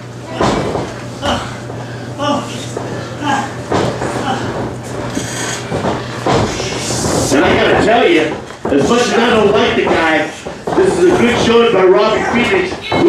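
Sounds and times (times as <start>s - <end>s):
steady low hum: 0.0s - 13.0s
indistinct voices and shouts: 11.7s - 13.0s.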